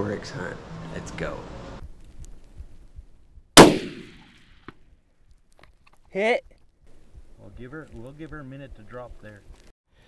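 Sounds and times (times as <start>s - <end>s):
rifle shot: 3.6s - 4.7s
faint heartbeat thumps: 6.9s - 7.4s.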